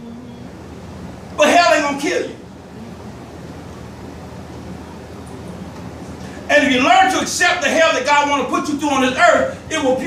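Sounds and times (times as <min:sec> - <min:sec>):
low hum: 0:00.0 - 0:09.7
even room hiss: 0:00.0 - 0:10.0.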